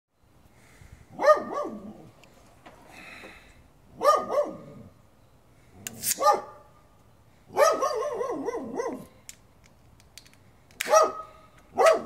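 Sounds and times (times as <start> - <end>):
dog barking: 1.2 - 1.9, 4.0 - 4.7, 6.2 - 6.7, 7.5 - 9.1, 10.9 - 12.0.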